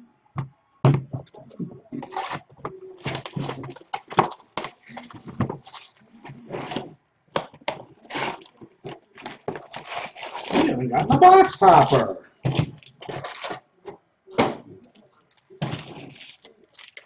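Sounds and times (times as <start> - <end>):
rustling and crinkling wrapping: 1.4 - 7.0, 7.6 - 13.7, 14.9 - 17.0.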